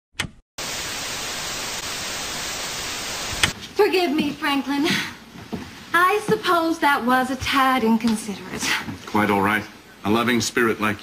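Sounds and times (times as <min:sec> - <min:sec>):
static hiss: 0:00.6 - 0:04.0.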